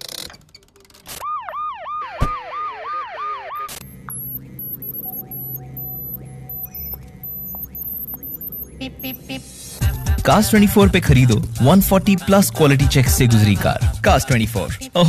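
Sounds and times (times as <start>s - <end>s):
electronic alarm siren yelping: 1.1s - 9.8s
steady low hum: 3.8s - 11.7s.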